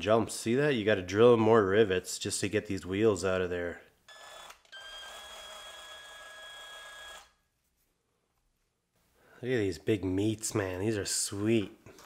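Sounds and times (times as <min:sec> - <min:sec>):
small electric drill whining: 0:04.1 - 0:07.4.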